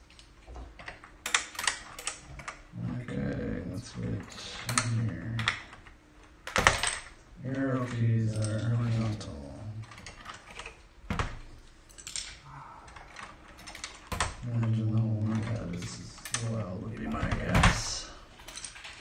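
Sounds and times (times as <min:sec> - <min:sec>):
man murmuring: 0:02.8 - 0:05.5, 0:12.4 - 0:13.2, 0:14.4 - 0:18.3.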